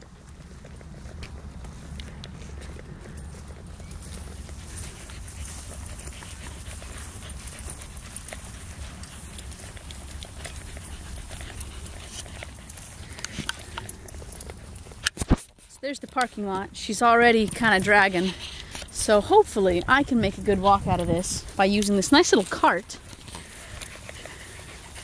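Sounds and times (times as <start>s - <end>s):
dog panting: 0.0s - 15.0s, 16.3s - 25.0s.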